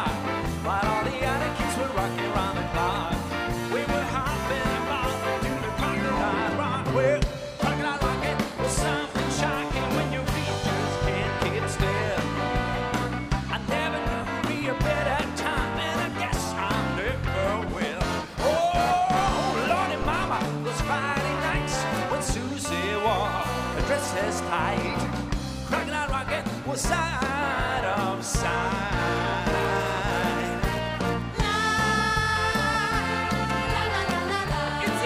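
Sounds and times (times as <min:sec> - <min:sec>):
drum and bass beat: 0:00.0 - 0:35.0
orchestra and rock band playing: 0:00.0 - 0:35.0
rising melody line: 0:00.1 - 0:17.5.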